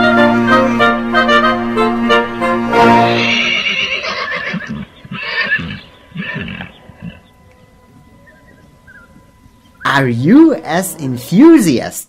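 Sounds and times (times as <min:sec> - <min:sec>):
horse neighing: 0:03.1 - 0:07.4.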